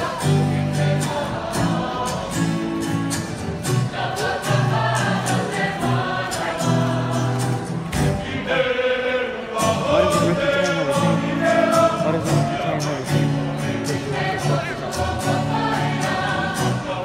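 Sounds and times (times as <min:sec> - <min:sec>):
acoustic guitar strumming: 0:00.0 - 0:17.0
group singing in unison: 0:00.0 - 0:17.0.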